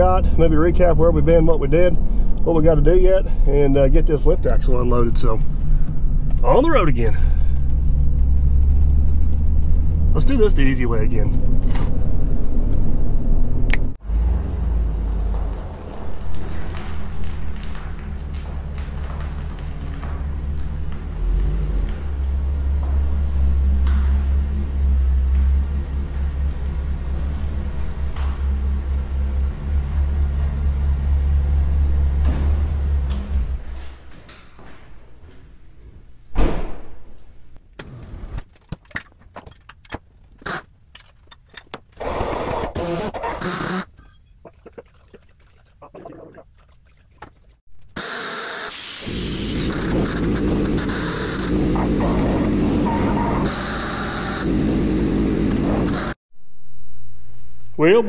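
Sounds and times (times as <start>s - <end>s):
truck engine rumbling: 0.0s - 34.1s, 49.0s - 56.2s
chain and metal clanking: 38.8s - 40.1s, 43.9s - 44.4s
electric hoist running: 48.0s - 52.8s, 53.4s - 56.2s.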